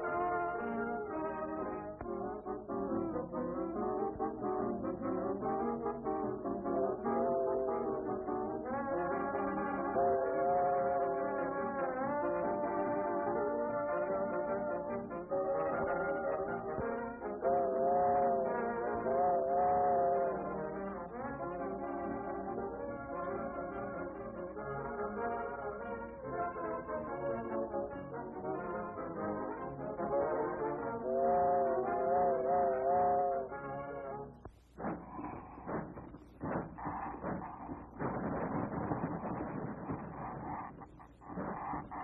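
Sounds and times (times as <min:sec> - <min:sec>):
cartoon orchestral music: 0:00.0 - 0:34.4.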